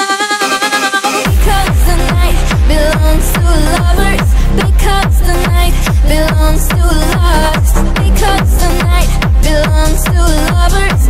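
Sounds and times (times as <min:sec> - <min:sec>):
punchy kick drums: 0:01.3 - 0:11.0
sub-bass line: 0:01.3 - 0:11.0.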